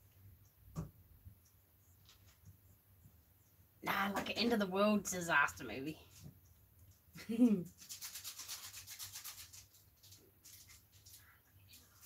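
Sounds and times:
woman speaking loudly: 0:03.8 - 0:06.0.

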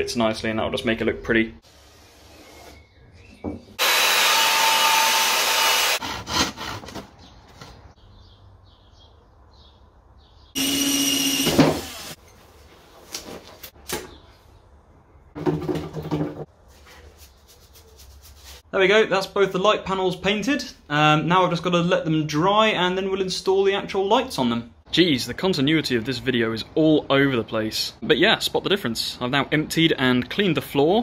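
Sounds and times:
power tool bursts: 0:03.8 - 0:06.0, 0:10.6 - 0:12.2.

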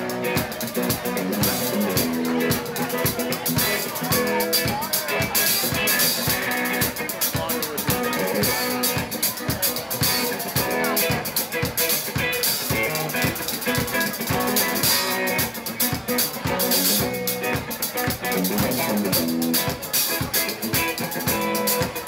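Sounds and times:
drum kit beat: 0:00.0 - 0:22.0
electric guitar: 0:00.0 - 0:22.0.

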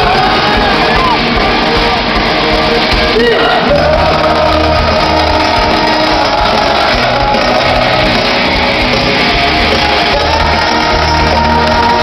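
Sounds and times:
crowd noise: 0:00.0 - 0:12.0
hard rock band playing loudly: 0:00.0 - 0:12.0.

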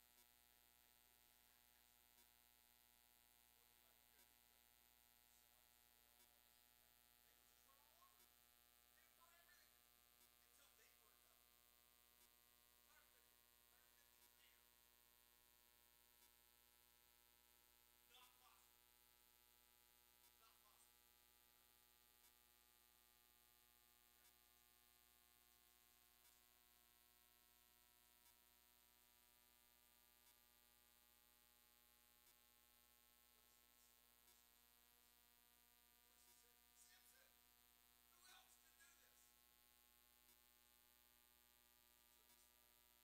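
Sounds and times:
faint electrical hum: 0:00.0 - 0:43.0.

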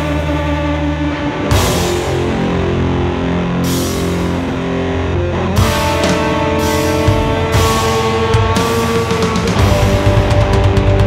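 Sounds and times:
high held guitar line: 0:00.0 - 0:11.0
live rock band: 0:00.0 - 0:11.0.

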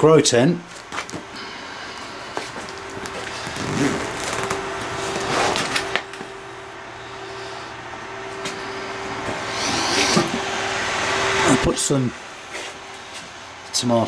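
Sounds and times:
small electric fan humming: 0:00.0 - 0:14.0
fabric flap rustling and zipper: 0:03.1 - 0:05.9.

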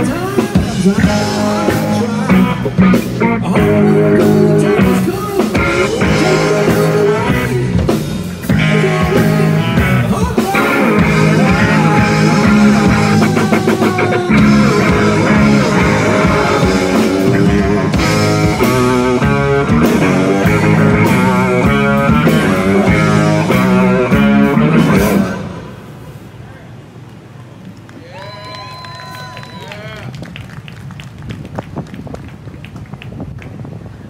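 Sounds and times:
live rock band playing: 0:00.0 - 0:25.8
singer through a pa system: 0:08.5 - 0:18.0.

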